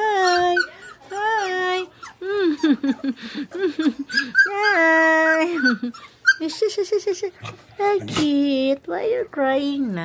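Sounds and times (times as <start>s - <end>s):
dogs whining: 0.0s - 8.2s
dogs yelping: 0.1s - 6.7s.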